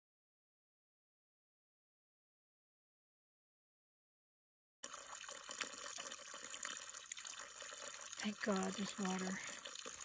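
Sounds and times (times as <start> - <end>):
water running from a pipe: 4.8 - 10.0.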